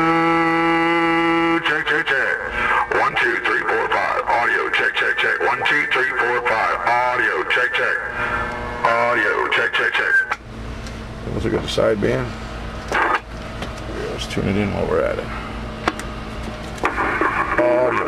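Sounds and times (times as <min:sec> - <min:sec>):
man making wordless test sounds: 0:00.0 - 0:10.4, 0:17.6 - 0:18.0.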